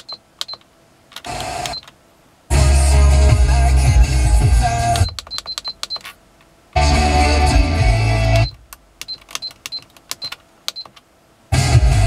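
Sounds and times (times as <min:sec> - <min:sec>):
music from car radio: 0:02.5 - 0:05.6, 0:06.8 - 0:08.6, 0:11.5 - 0:12.0.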